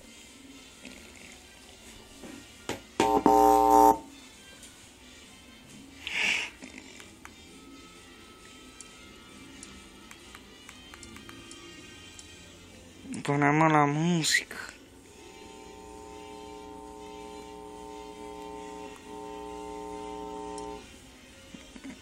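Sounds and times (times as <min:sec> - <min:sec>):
loud electronic tone: 0:03.0 - 0:04.0, 0:15.2 - 0:20.8.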